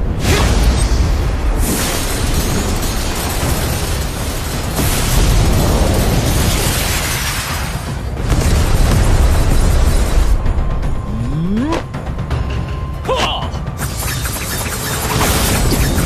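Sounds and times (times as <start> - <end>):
energy blasts and explosions: 0.0 - 12.1, 13.7 - 16.0
background music: 0.0 - 16.0.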